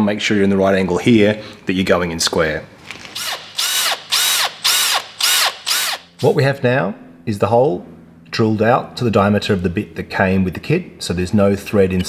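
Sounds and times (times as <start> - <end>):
cordless drill bursts: 3.0 - 6.2.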